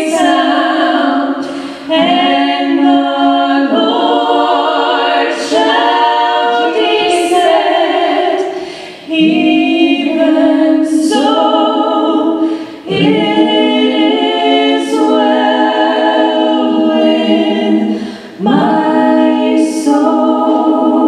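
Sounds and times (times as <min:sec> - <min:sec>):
women singing in harmony: 0:00.0 - 0:21.0
singers breathing: 0:01.4 - 0:01.9, 0:08.4 - 0:09.1, 0:12.4 - 0:12.9, 0:17.9 - 0:18.4.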